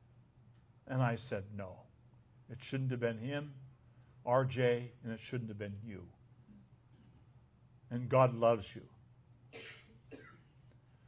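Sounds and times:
faint short cough: 9.5 - 10.6.

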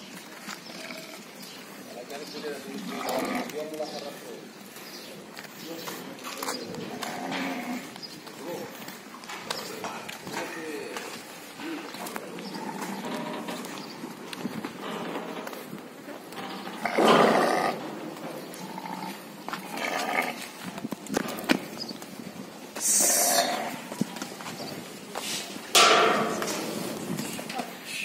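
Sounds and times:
animals moving: 0.0 - 28.0
sheep bleating: 6.9 - 7.9, 18.5 - 20.5, 22.9 - 24.0.

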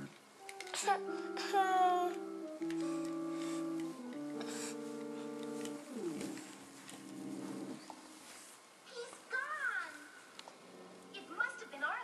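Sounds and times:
cartoon music from television: 0.0 - 8.2.

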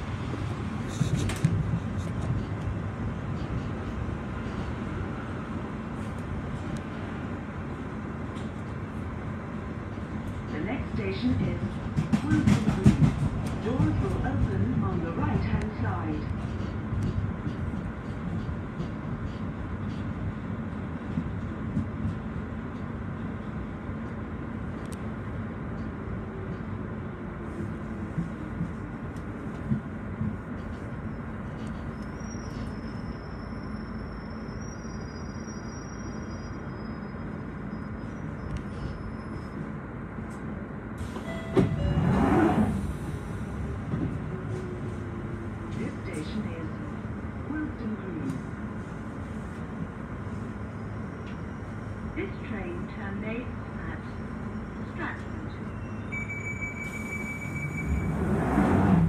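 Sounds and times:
train rumbling: 0.0 - 59.0
high brake squeal: 31.8 - 39.7, 54.2 - 58.4.

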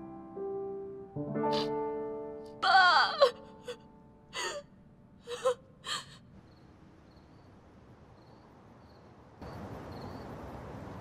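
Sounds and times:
soft sad piano music: 0.0 - 6.4
woman wailing cry: 2.6 - 3.8, 5.3 - 6.2
woman gasping sobs: 2.6 - 6.2.

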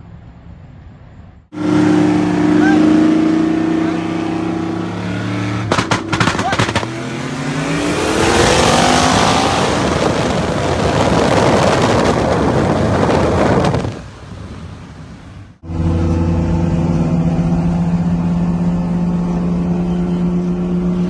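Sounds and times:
car engine accelerating hard: 1.5 - 13.9, 15.6 - 21.0
rushing wind noise: 5.6 - 15.6.

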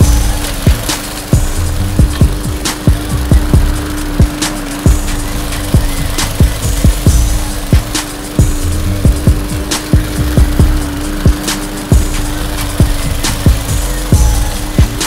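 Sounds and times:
deep kick drums: 0.0 - 15.0
lawn mower running: 0.0 - 15.0.

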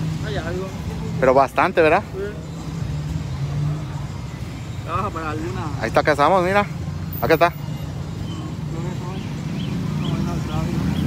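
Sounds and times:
car engines in traffic: 0.0 - 11.0.

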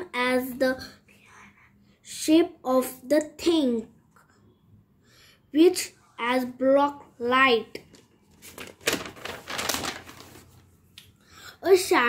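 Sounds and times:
rustling and clicking handling noise: 7.8 - 10.6.

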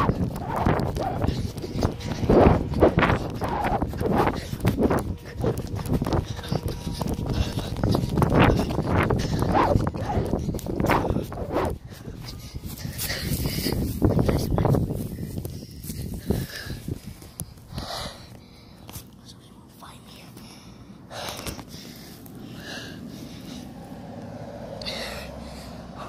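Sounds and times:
child whispering and breathing: 0.0 - 26.0.

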